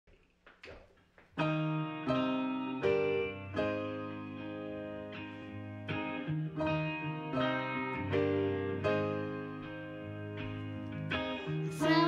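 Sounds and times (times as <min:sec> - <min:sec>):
electric keyboard piano chords: 0:01.4 - 0:12.0.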